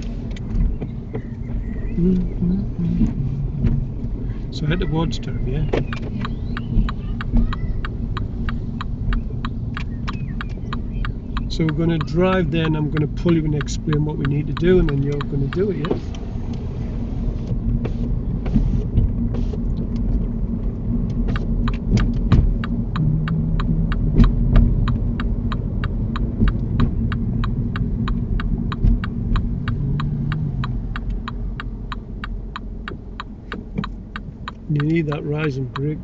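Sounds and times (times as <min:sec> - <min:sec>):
car engine and road rumble: 0:00.0 - 0:36.0
turn signal ticking: 0:00.0 - 0:36.0.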